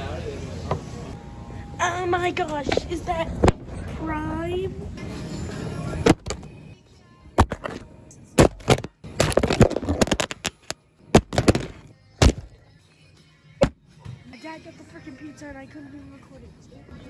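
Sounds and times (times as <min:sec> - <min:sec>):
noisy background: 0:00.0 - 0:17.0.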